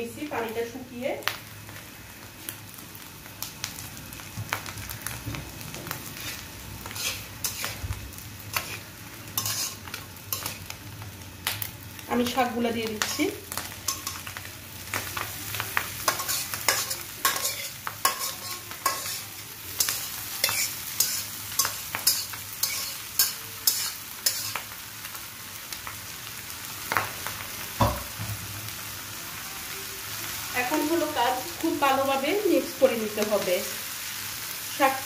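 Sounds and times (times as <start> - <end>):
greens sizzling in hot oil: 0.0 - 35.0
utensil clicking and scraping pan: 6.2 - 7.8, 8.5 - 8.8, 9.4 - 9.8, 16.1 - 24.6.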